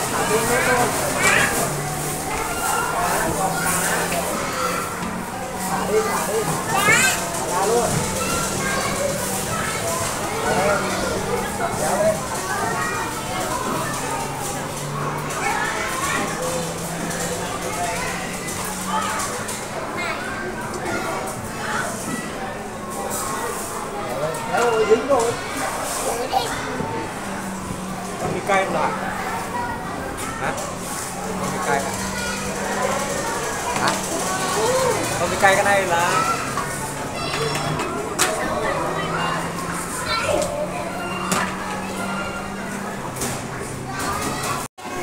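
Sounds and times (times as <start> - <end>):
children chattering: 0.0 - 45.0.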